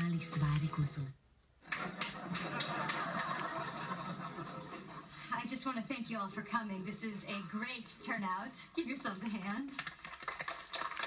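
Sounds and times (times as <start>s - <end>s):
crowd noise from television: 0.0s - 11.0s.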